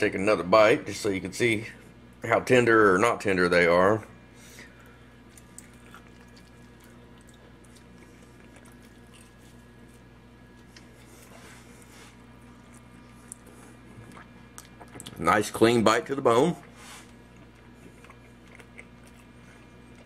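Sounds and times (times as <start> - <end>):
faint chewing: 4.7 - 15.2, 16.6 - 20.0.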